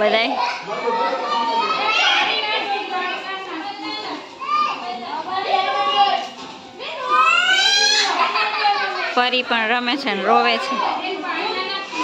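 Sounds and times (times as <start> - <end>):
children and adults chattering: 0.0 - 12.0.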